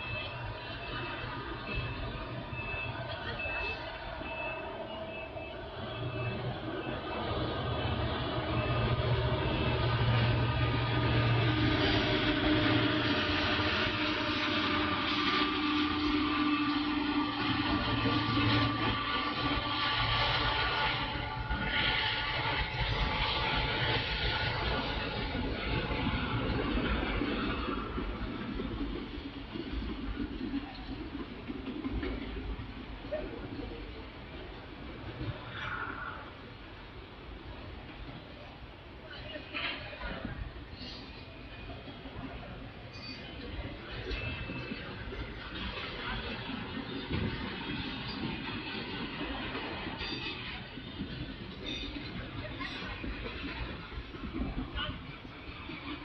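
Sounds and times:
diesel locomotive engine drone: 0.0s - 56.0s
train wheels rolling on rails: 0.0s - 56.0s.

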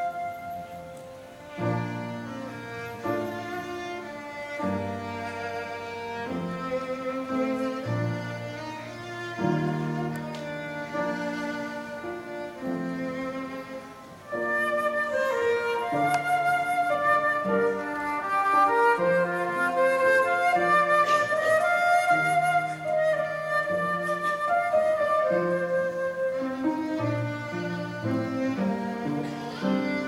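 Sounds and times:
flute melody: 0.0s - 30.0s
violins: 0.0s - 30.0s.

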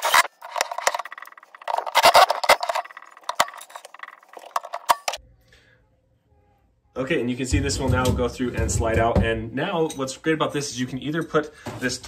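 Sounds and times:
metal clinks: 0.0s - 5.2s.

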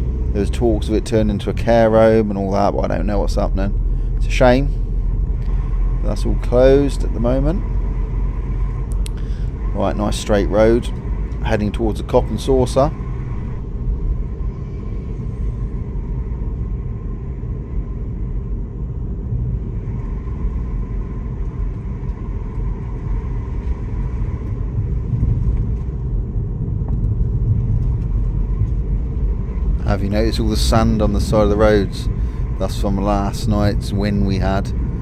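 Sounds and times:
car interior road rumble: 0.0s - 35.0s.

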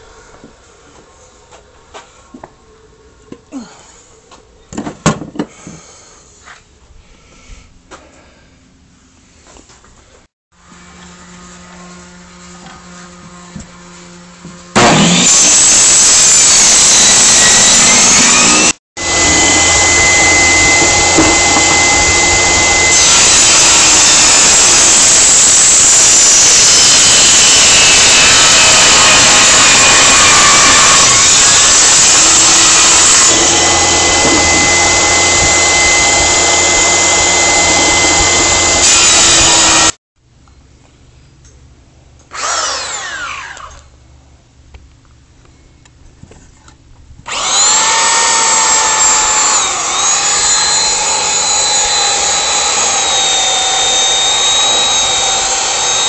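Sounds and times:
table saw cutting wood: 10.6s - 40.0s, 42.3s - 43.8s, 47.3s - 56.0s.

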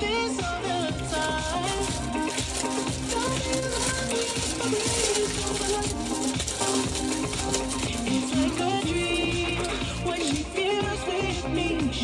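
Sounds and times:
pop song: 0.0s - 12.0s.

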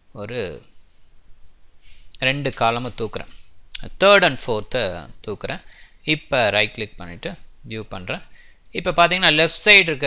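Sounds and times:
sharp computer clicks: 1.6s - 3.2s, 5.5s - 5.9s
man speaking: 2.2s - 10.0s.

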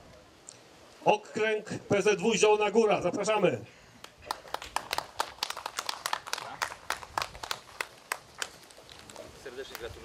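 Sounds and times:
people clapping: 4.0s - 10.0s.

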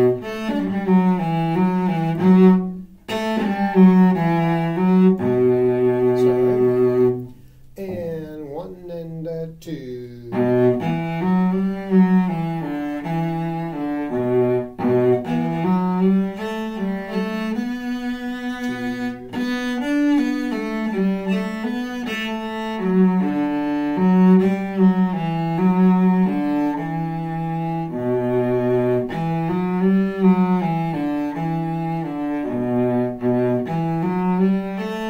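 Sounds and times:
solo cello bowed melody: 0.0s - 8.7s, 10.2s - 35.0s.

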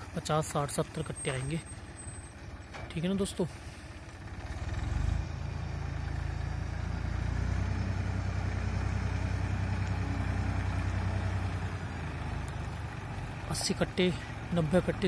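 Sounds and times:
tractor diesel engine running: 0.0s - 15.0s.

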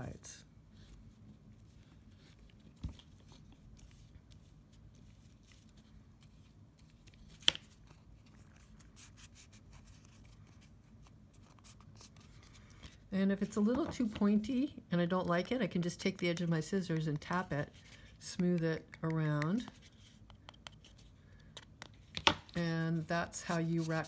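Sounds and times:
glue brush scratching paper: 23.2s - 24.0s.

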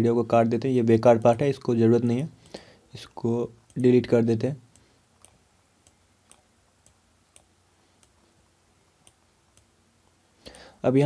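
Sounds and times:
faint computer mouse clicks: 2.4s - 2.6s, 3.6s - 4.0s, 4.7s - 8.2s, 9.0s - 9.7s.

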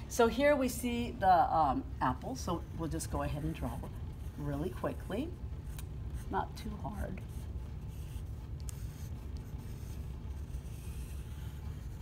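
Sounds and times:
low room hum: 0.0s - 12.0s
pencil scratching on paper: 2.6s - 12.0s.

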